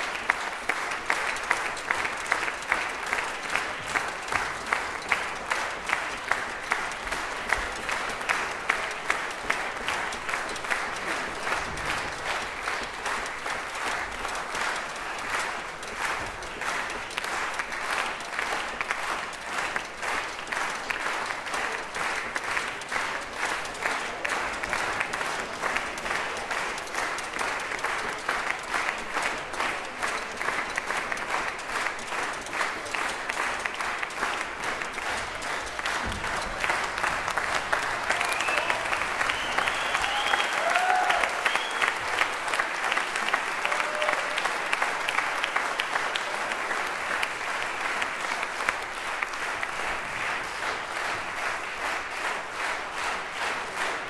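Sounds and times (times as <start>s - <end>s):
audience applauding: 0.0s - 54.0s
calls from audience: 36.2s - 47.0s.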